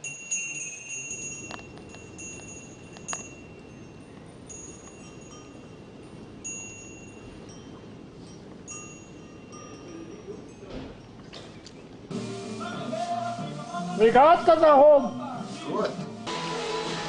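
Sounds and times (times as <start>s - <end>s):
light chimes ringing: 0.0s - 12.2s.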